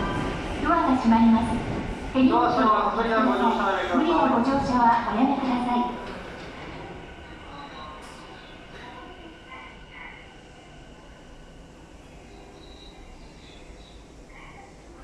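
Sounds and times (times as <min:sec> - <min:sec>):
train low hum: 0:00.0 - 0:15.0
platform announcement: 0:02.2 - 0:06.0
faint chirps: 0:12.1 - 0:14.8.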